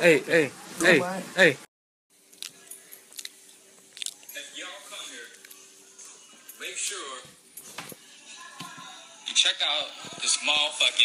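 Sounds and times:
faint voices talking: 8.0 - 11.0.

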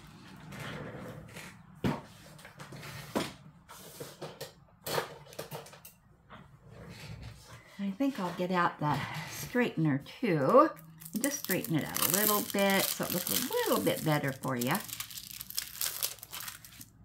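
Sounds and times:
paper and plastic rustling: 10.9 - 17.0.

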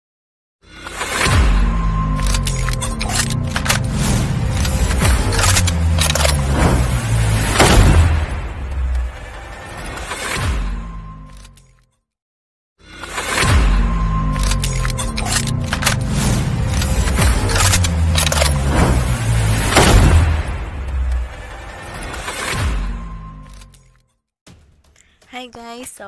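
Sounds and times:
heavy deep rumble: 1.3 - 9.8, 13.5 - 21.9
sharp bullet impact hit: 3.9 - 11.0, 16.0 - 23.4.

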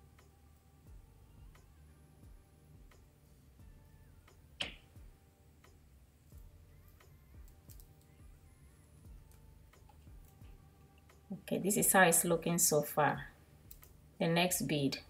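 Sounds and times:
beads clicking together: 6.3 - 8.1.

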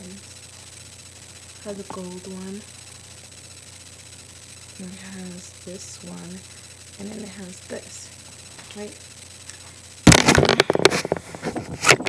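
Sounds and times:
crackling and knocking on microphone: 10.1 - 12.0.

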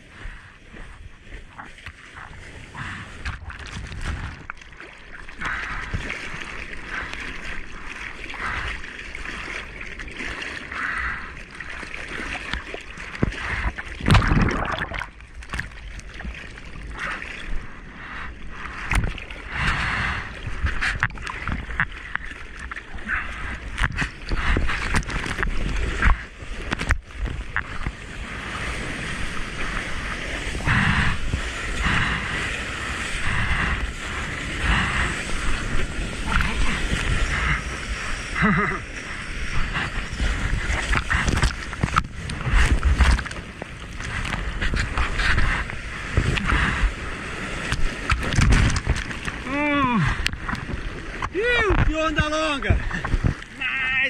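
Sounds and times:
wave breaking: 0.0 - 54.0
sea water splashing on camera: 0.7 - 54.0.

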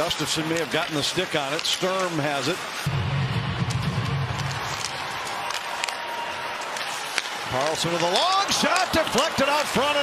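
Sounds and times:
hockey stick and puck clacks: 0.0 - 2.8, 3.6 - 10.0
crowd din: 2.8 - 10.0
low drone: 2.9 - 4.9.

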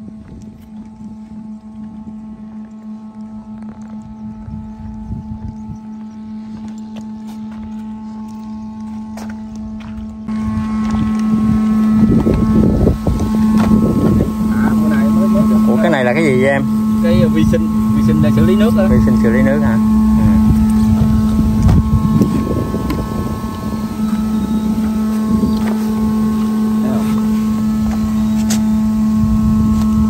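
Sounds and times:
electric motor hum: 0.0 - 30.0
low rumbling wind: 0.0 - 30.0
microphone handling noise: 10.3 - 15.6, 19.8 - 30.0.

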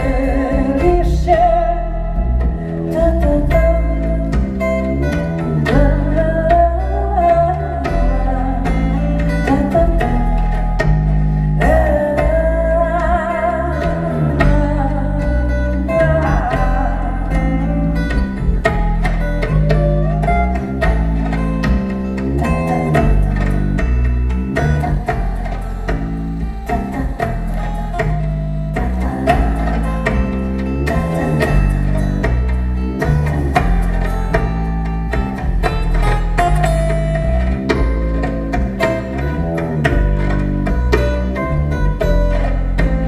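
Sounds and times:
woman singing with vibrato: 0.0 - 4.7, 5.6 - 10.6, 11.6 - 18.2, 22.3 - 23.6, 26.6 - 32.2
bass guitar notes: 0.0 - 43.0
plucked acoustic guitar: 0.0 - 43.0.

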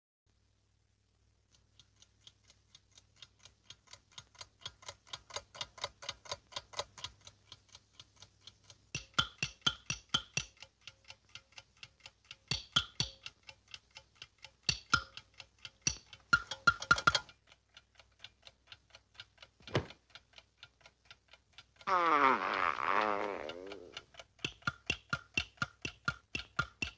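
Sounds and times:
cartoon alarm clock ticking: 1.6 - 26.9.

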